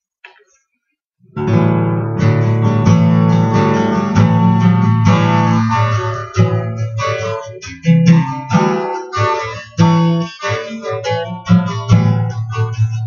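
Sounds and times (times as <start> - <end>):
acoustic guitar strumming chords: 1.3 - 13.0.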